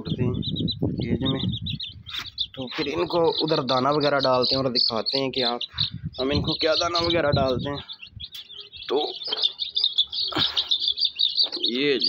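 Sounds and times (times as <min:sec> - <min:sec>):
small birds chirping rapidly: 0:00.0 - 0:12.0.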